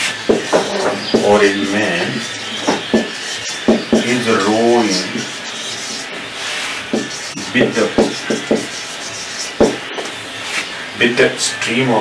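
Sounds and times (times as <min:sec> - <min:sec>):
marker writing on whiteboard: 0:00.0 - 0:10.6.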